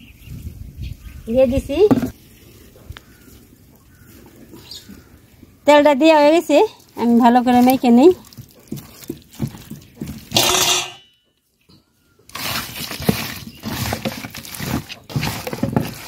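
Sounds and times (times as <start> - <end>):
hands squishing raw chicken: 6.8 - 10.4.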